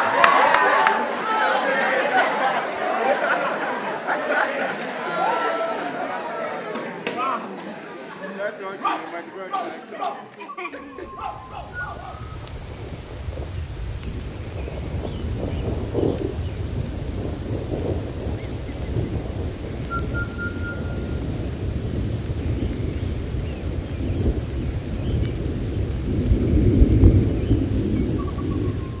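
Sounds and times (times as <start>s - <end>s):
steady rain: 0.0s - 9.0s, 10.6s - 29.0s
low rolling thunder: 11.0s - 29.0s.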